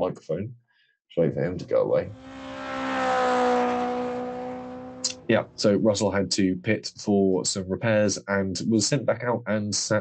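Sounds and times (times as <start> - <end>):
small helicopter flying overhead: 2.1 - 5.2.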